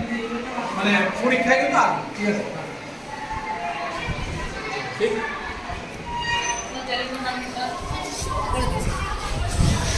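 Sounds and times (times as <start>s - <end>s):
children chattering: 0.0s - 9.9s.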